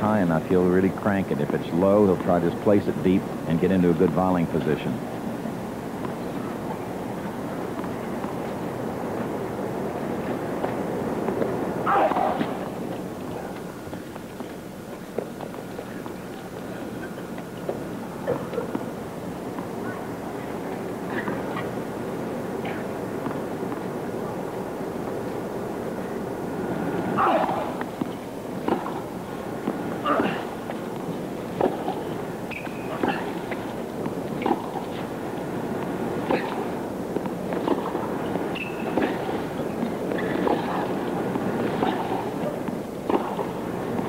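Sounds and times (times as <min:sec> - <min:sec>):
stadium crowd murmuring: 0:00.0 - 0:44.0.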